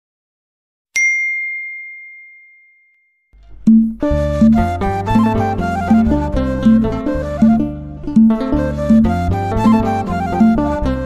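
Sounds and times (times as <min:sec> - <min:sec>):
high notification ding: 0:01.0 - 0:04.0.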